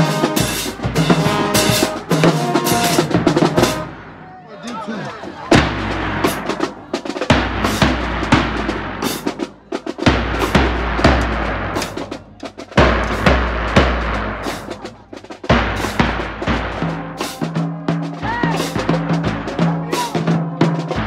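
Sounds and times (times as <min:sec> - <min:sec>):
marching band playing: 0:00.0 - 0:21.0.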